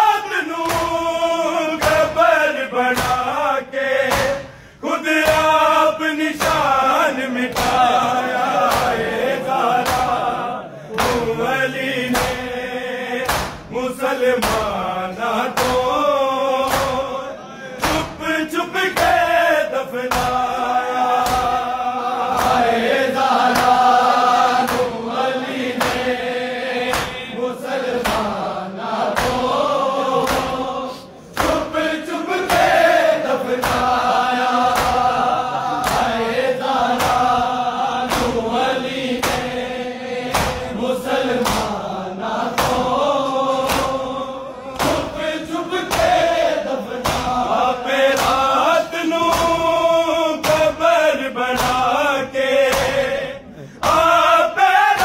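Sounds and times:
men chanting a lament: 0.0s - 55.0s
open-handed chest slaps: 0.6s - 1.1s, 1.8s - 2.2s, 2.9s - 3.4s, 4.0s - 4.5s, 5.2s - 5.7s, 7.5s - 8.0s, 8.6s - 9.1s, 9.8s - 10.3s, 12.1s - 12.5s, 13.2s - 13.7s, 14.4s - 14.8s, 15.5s - 16.0s, 16.6s - 17.1s, 17.8s - 18.2s, 20.1s - 20.5s, 21.2s - 21.6s, 22.3s - 22.7s, 23.5s - 23.8s, 24.6s - 25.0s, 25.7s - 26.2s, 26.8s - 27.3s, 27.9s - 28.4s, 29.1s - 29.6s, 30.2s - 30.6s, 31.3s - 31.7s, 33.6s - 34.0s, 34.6s - 35.2s, 35.8s - 36.2s, 36.9s - 38.5s, 39.2s - 39.6s, 40.3s - 41.8s, 42.5s - 43.0s, 43.6s - 44.0s, 44.8s - 45.3s, 45.9s - 47.5s, 48.1s - 48.6s, 49.2s - 49.8s, 50.4s - 50.8s, 51.6s - 52.0s, 52.6s - 53.1s.

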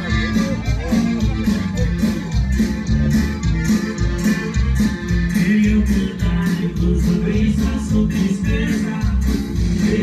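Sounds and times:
live band music: 0.0s - 10.0s
person singing: 5.3s - 10.0s.

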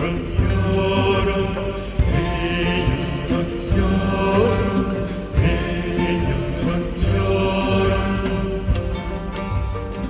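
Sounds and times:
music of long held notes: 0.0s - 10.0s.

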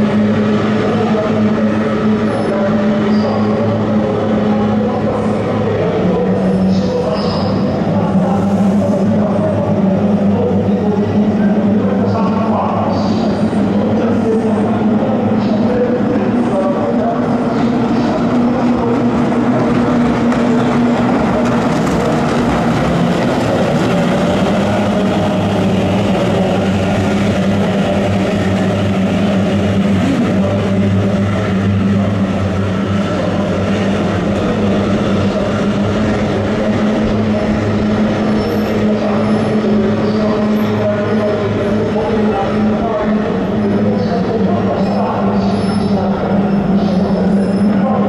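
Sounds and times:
racing boat engines at full throttle: 0.0s - 48.0s.

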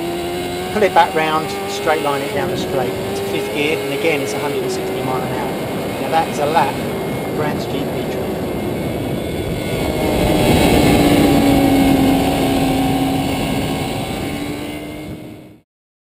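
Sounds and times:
motorcycle engine at speed: 0.0s - 15.6s
wind rush: 0.0s - 15.6s.

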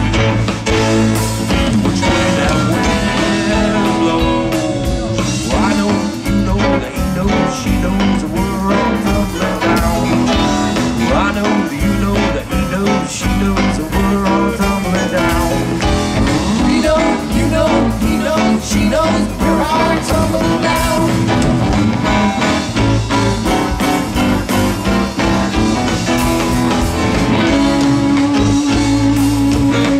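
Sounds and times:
rock band playing: 0.0s - 29.9s
sliding lead guitar line: 0.0s - 29.9s
steady drum beat: 0.0s - 29.9s.

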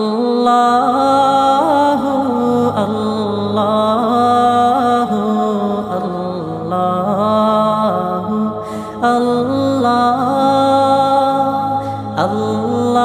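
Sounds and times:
low vocal drone: 0.0s - 13.0s.

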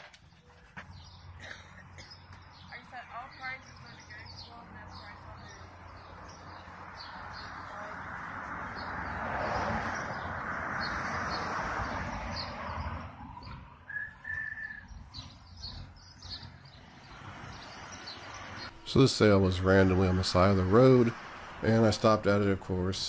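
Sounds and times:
small birds chirping: 0.0s - 23.0s
short whistled note: 13.9s - 14.8s
rushing noise: 16.8s - 23.0s.

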